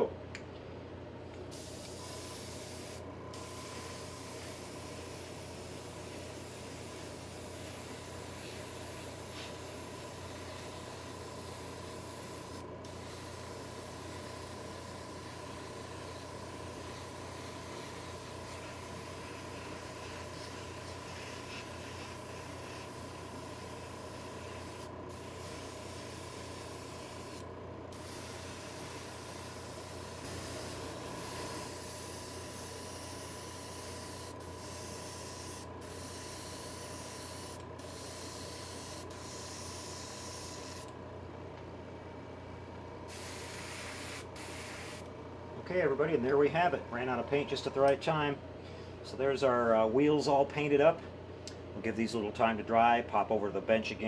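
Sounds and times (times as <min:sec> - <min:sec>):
steady low hum: 0:00.0 - 0:54.0
airbrush spraying hiss: 0:01.5 - 0:40.9, 0:43.1 - 0:45.1.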